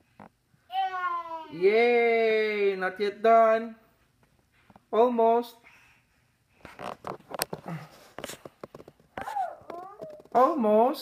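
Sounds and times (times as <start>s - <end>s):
toddler high-pitched vocalization: 0.7s - 1.6s, 9.2s - 10.3s
rustling among stuffed toys: 6.4s - 10.4s.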